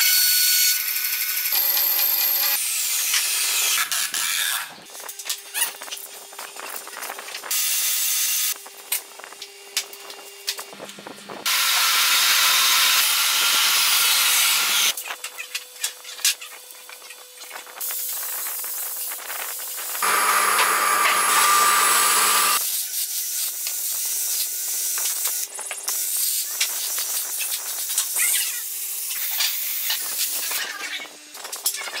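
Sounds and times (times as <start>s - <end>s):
power tool sanding wood: 20.0s - 22.6s.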